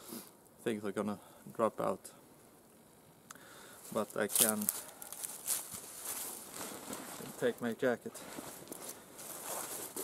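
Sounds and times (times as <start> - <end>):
jacket fabric rustling: 3.9 - 7.6, 8.2 - 10.0.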